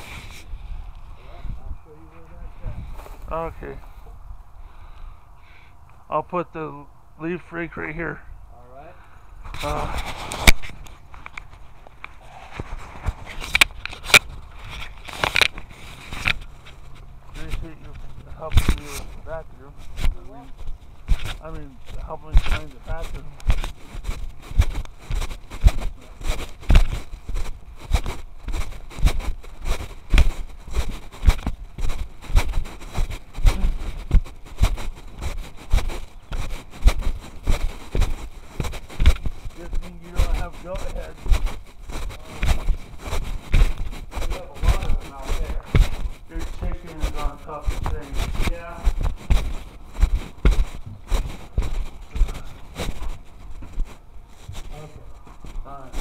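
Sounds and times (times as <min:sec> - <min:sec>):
microphone handling thumps: 0:09.4 - 0:56.0.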